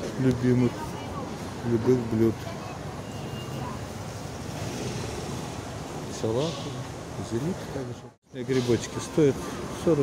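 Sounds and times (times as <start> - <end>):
open-air market rumble: 0.0 - 10.0.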